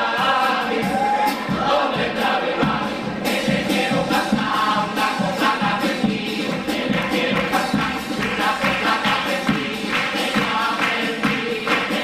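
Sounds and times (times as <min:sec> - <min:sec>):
male choir singing in unison: 0:00.0 - 0:12.0
percussion hits: 0:00.0 - 0:12.0.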